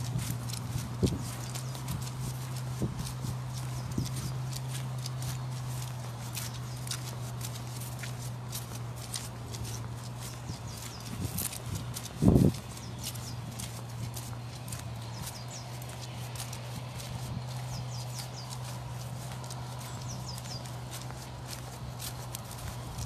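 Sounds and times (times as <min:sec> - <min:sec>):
footsteps squelching in mud: 0:00.0 - 0:23.0.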